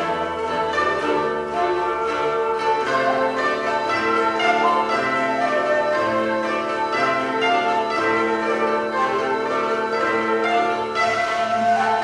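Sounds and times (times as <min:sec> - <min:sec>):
koto ensemble plucked strings: 0:00.0 - 0:12.0.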